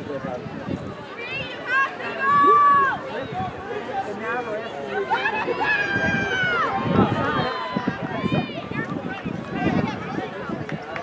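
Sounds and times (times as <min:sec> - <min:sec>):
spectators shouting encouragement: 0:01.1 - 0:10.9
long rising and falling yell: 0:05.0 - 0:08.6.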